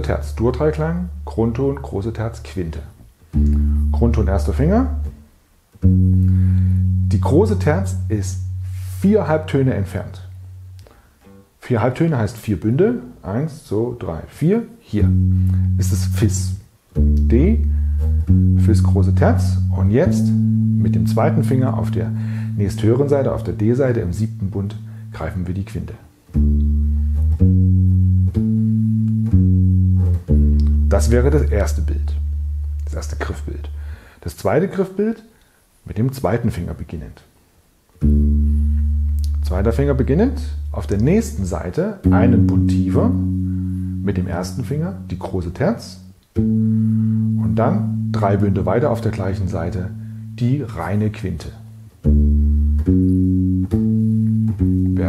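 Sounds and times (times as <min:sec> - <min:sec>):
electric bass arpeggio: 0:00.0 - 0:02.0, 0:03.3 - 0:05.2, 0:05.8 - 0:10.8, 0:15.0 - 0:34.0, 0:38.0 - 0:55.0.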